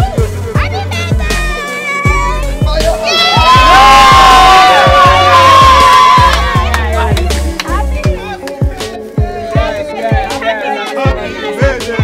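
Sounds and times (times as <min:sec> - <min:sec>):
background music with steady beat: 0:00.0 - 0:12.0
group cheering and shouting: 0:00.0 - 0:12.0.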